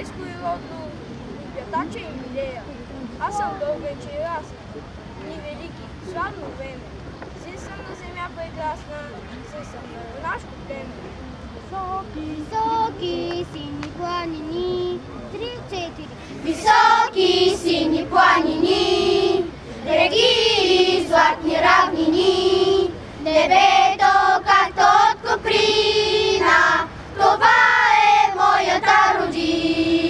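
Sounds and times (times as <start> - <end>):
children singing in unison: 16.4 - 30.0.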